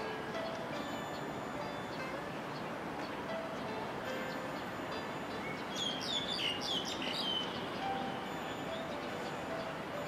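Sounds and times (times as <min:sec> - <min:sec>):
steady background noise: 0:00.0 - 0:10.0
bird chirping: 0:00.4 - 0:10.0.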